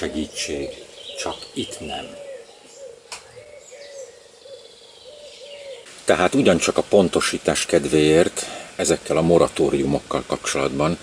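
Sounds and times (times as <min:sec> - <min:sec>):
bird hooting: 0:00.0 - 0:05.9.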